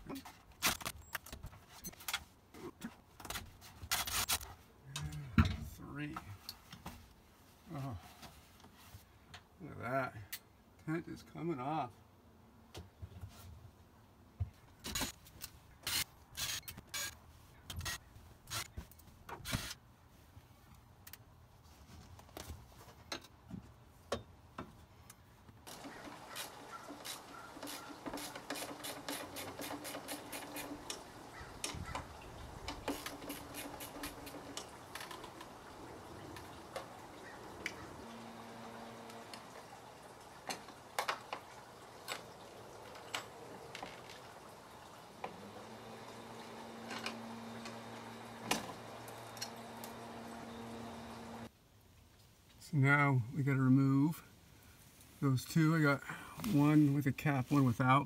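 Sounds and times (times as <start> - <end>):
tent fittings clicking and knocking: 23.1 - 37.8, 40.4 - 44.4.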